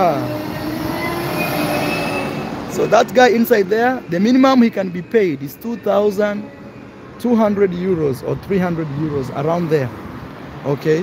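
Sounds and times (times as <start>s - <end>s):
street-sweeper truck engine hum: 0.0s - 11.0s.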